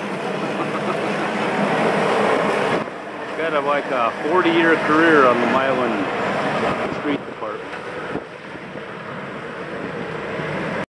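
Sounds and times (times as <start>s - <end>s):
vehicle engine running: 0.0s - 10.8s
wind on microphone: 4.9s - 10.8s.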